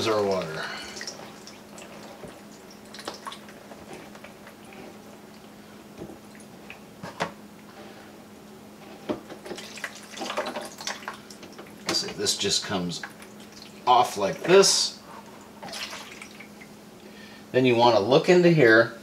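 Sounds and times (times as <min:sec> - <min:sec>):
water dripping and trickling: 0:00.0 - 0:05.5, 0:09.5 - 0:11.9, 0:12.9 - 0:14.5, 0:15.6 - 0:16.7
faint steady hum: 0:00.0 - 0:19.0.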